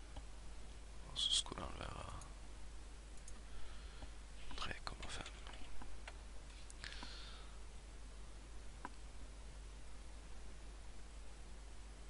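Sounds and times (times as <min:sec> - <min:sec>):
faint steady hiss: 0:00.0 - 0:12.0
keyboard and mouse clicks: 0:03.2 - 0:03.4.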